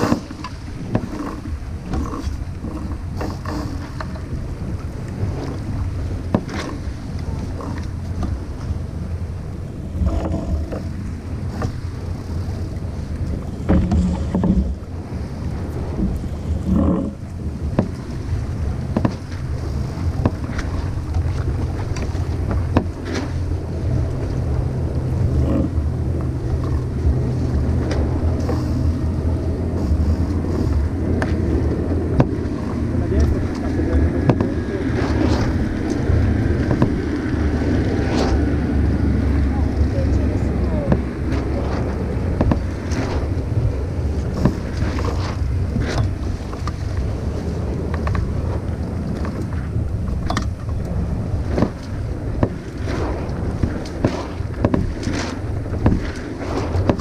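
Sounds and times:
water rushing past hull: 0.0 - 57.0
wind buffeting microphone: 0.0 - 57.0
sharp knocks and clicks: 17.8 - 18.0, 18.9 - 19.3, 32.1 - 34.6, 36.6 - 37.1, 42.4 - 43.0, 50.1 - 50.8, 53.6 - 56.1, 56.8 - 57.0.

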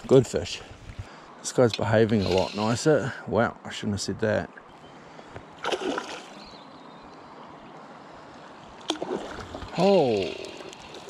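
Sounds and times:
river water flowing: 0.0 - 3.4, 4.4 - 11.0.

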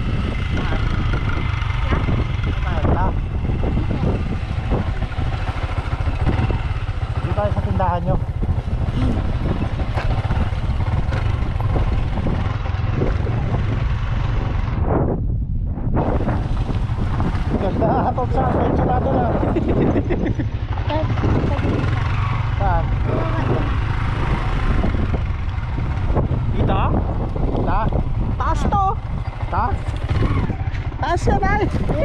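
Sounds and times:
motorcycle engine running: 0.0 - 32.0
wind rumble on microphone: 0.0 - 32.0.

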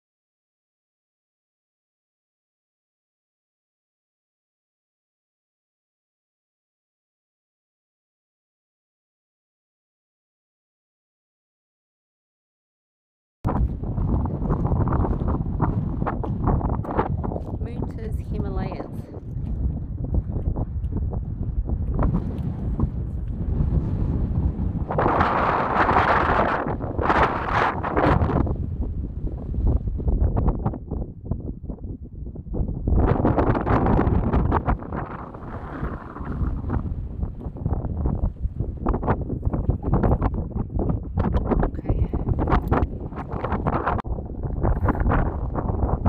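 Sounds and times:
wind buffeting microphone: 13.5 - 46.0.

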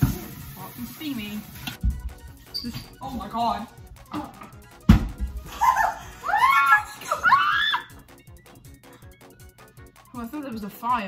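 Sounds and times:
young people shrieking excitedly: 5.5 - 7.9.

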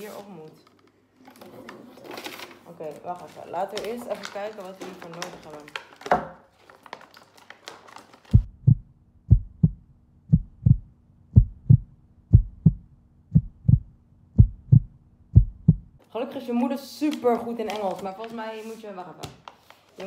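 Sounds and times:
heartbeat thumps: 8.3 - 16.0.

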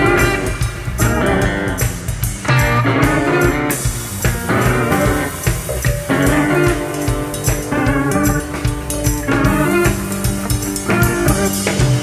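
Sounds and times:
bass guitar: 0.0 - 12.0
drums: 0.0 - 12.0
electric guitar riffs: 0.0 - 12.0.

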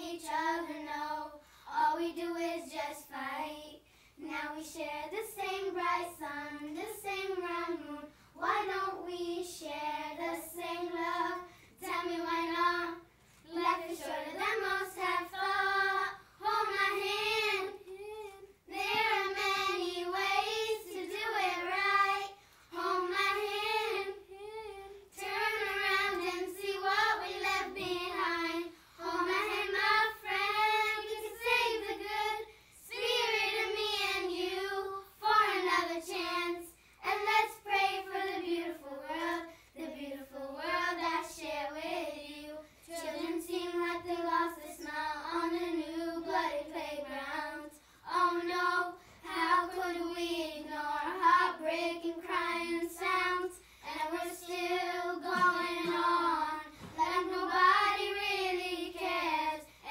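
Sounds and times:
girls singing in unison: 0.0 - 59.9.

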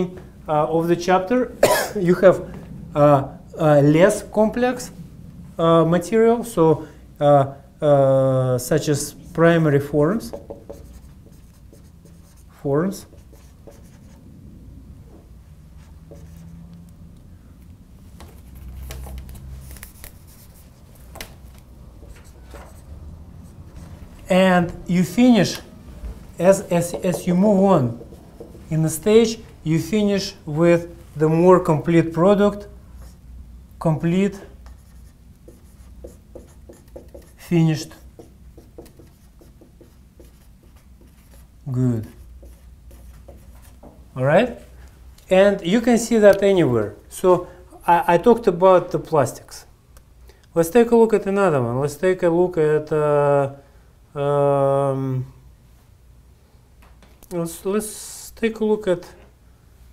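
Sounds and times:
low steady room hum: 0.0 - 59.9
marker scratching on whiteboard: 9.1 - 14.2, 15.8 - 16.6, 18.6 - 21.2, 22.0 - 24.0, 26.4 - 29.5, 34.6 - 44.0.

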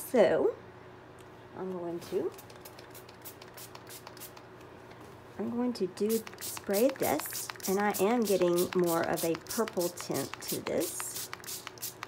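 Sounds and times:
small ticks from spray bottle: 2.4 - 4.4, 6.1 - 12.0.

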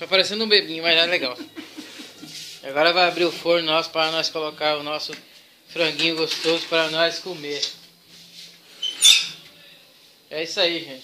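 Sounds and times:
oven door squeak and clank: 8.8 - 9.4.

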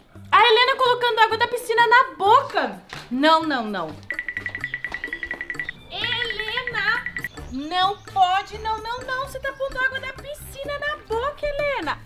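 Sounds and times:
background music: 0.0 - 12.0
rapidly pulsing ringing tone: 4.1 - 7.3.

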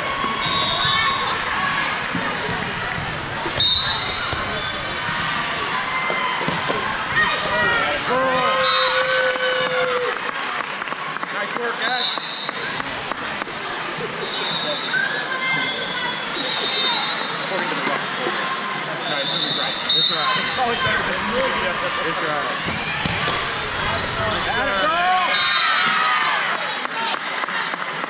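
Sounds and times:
volleyballs struck and bouncing: 6.0 - 7.7, 22.6 - 24.2.

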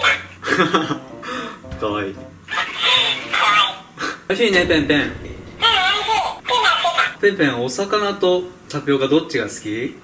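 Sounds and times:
background music: 0.0 - 3.7.

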